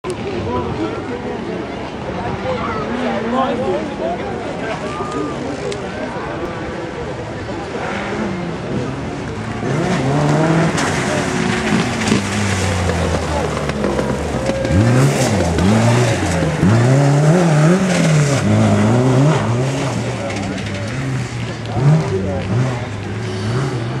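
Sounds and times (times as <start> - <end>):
buggy engine revving: 7.1 - 24.0.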